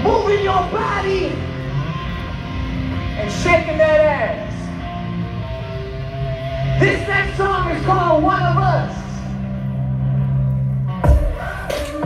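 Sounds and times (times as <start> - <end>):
rock band bass drone: 0.0 - 12.0.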